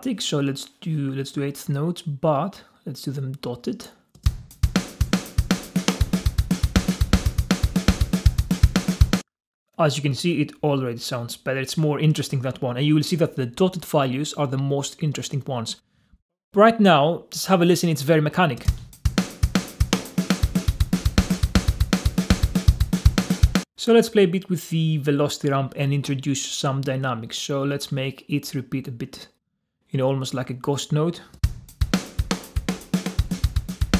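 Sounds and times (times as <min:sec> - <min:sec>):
rapid drum machine beat: 0:04.3 - 0:09.3, 0:18.6 - 0:23.7, 0:31.4 - 0:33.9.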